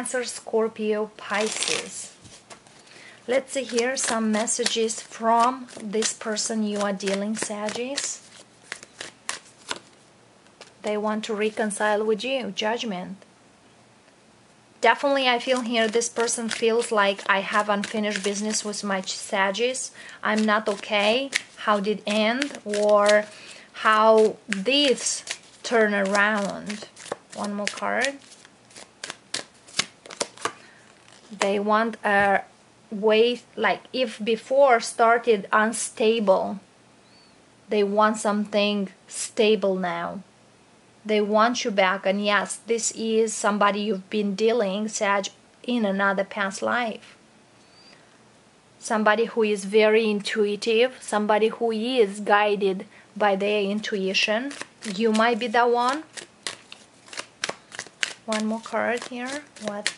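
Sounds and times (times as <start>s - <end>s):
cards being shuffled: 1.2s - 10.8s, 15.3s - 19.6s, 20.3s - 31.6s, 54.3s - 59.9s.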